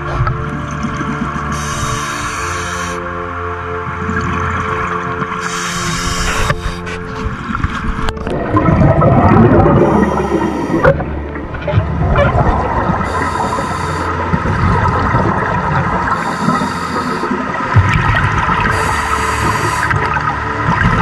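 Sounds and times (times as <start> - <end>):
regulator hiss on inhalation: 1.5 - 3.0, 5.4 - 7.0, 13.1 - 14.1, 16.2 - 17.4, 18.7 - 20.0
gurgle of exhaled bubbles: 7.7 - 13.6, 14.3 - 21.0.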